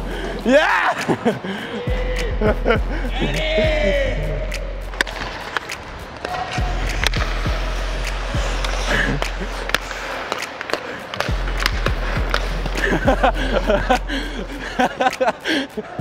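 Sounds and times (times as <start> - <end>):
background music: 0.0 - 16.0
hockey sticks and puck clacking: 4.4 - 15.9
skates scraping on ice: 4.9 - 15.6.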